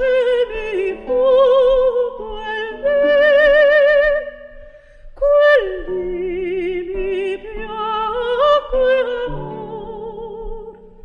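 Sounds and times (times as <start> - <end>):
plucked guitar: 0.0 - 11.0.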